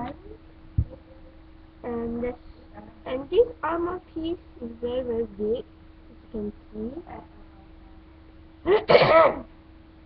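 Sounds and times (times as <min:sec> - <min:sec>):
faint steady hum: 0:00.0 - 0:10.0
person sneezing: 0:08.7 - 0:09.5.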